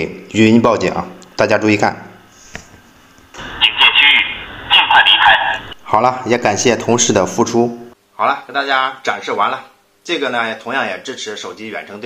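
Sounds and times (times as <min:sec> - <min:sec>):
recorded voice warning from speaker: 0:03.4 - 0:07.4.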